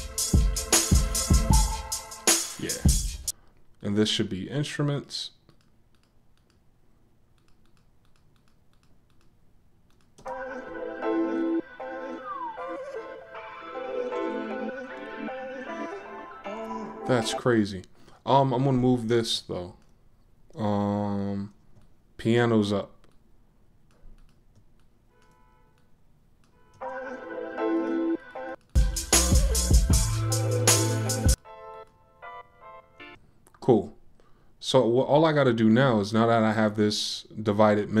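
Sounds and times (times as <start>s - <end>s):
hip-hop beat with chords: 0.0s - 3.3s, 10.2s - 17.4s, 26.8s - 31.4s
computer mouse clicks: 5.5s - 6.7s, 7.3s - 10.3s, 23.0s - 26.6s.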